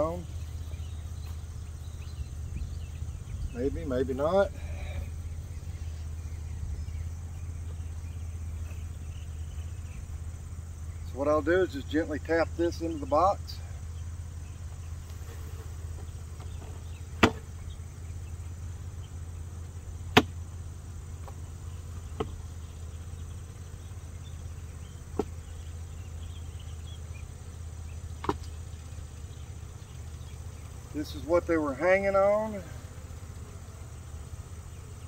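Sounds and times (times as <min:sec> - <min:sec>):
steady low hum: 0:00.0 - 0:35.0
lid knocking on wooden hive box: 0:22.1 - 0:22.4.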